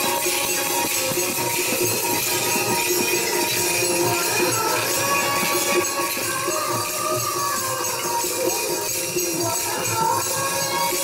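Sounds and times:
tabla strokes: 0.0 - 11.0.

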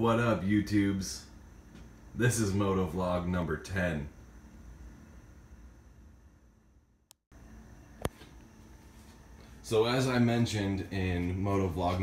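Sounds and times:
low hiss and hum: 0.0 - 12.0.

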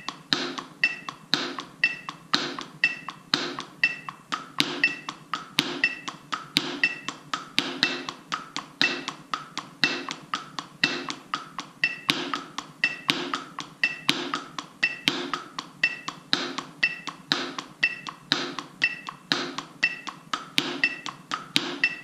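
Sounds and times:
metronome beeps: 0.0 - 10.2, 10.8 - 22.0
drumsticks on a practice pad: 0.0 - 22.0.

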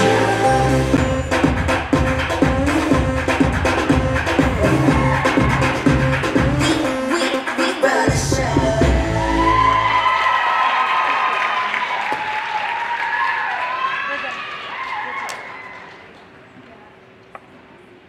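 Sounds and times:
audience cheering and applauding: 0.0 - 6.8, 8.9 - 16.2.

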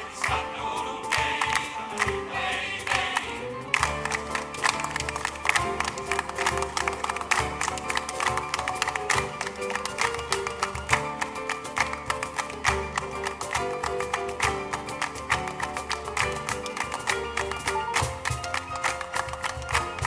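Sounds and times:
male choir singing: 0.0 - 3.7
hand claps: 1.1 - 2.3, 2.9 - 20.0
held piano tones: 3.3 - 20.0.

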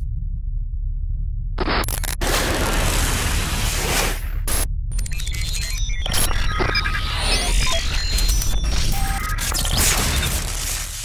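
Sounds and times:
deep steady rumble: 0.0 - 5.2
glitchy clicks: 1.6 - 2.6, 4.4 - 11.0
short electronic beeps: 4.9 - 10.4.

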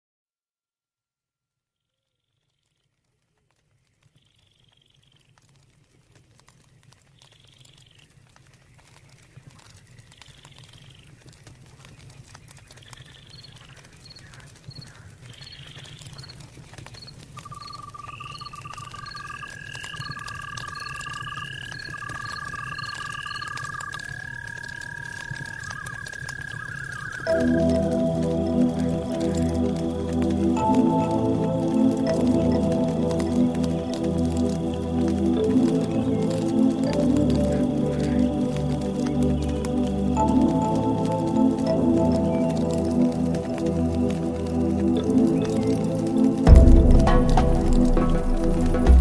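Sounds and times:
low rumble and crackle: 2.4 - 49.0
chirps pips and trills: 12.5 - 49.0
bird-like calls: 12.8 - 16.4, 17.0 - 27.8
electronic music: 27.3 - 49.0
long held high tone: 27.3 - 49.0.

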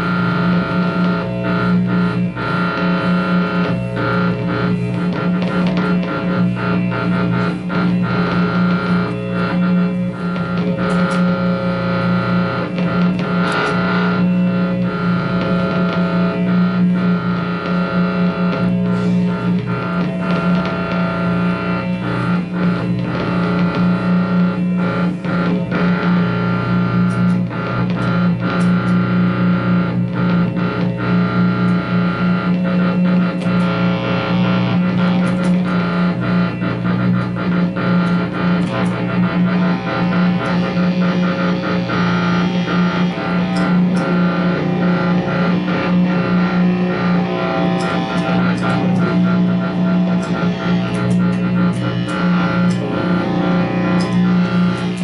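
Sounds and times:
noise music drone: 0.0 - 55.0
crackles and clicks: 0.1 - 55.0.

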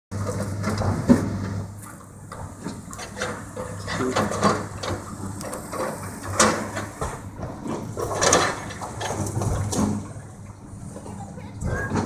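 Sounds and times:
excavator diesel engine hum: 0.1 - 12.0.

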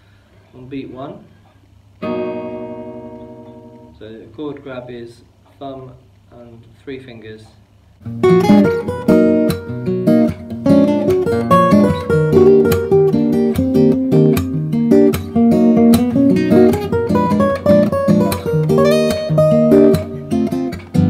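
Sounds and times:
fingerpicked acoustic guitar chords: 2.0 - 4.8, 8.0 - 21.0.

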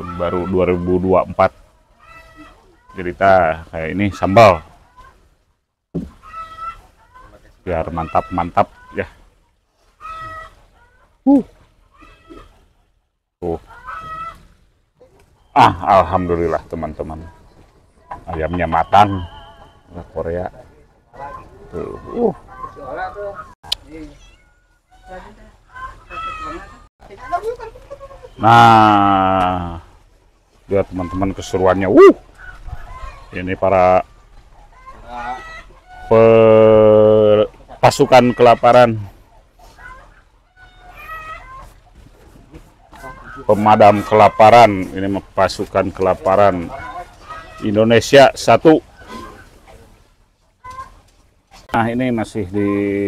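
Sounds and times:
chickens clucking: 0.0 - 53.0.

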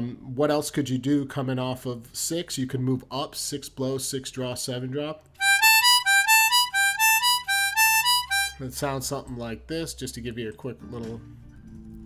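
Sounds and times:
harmonica notes stepping upward: 5.4 - 8.9.

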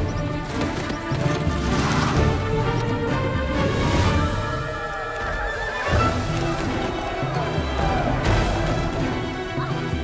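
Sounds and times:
film trailer music: 0.0 - 10.0.

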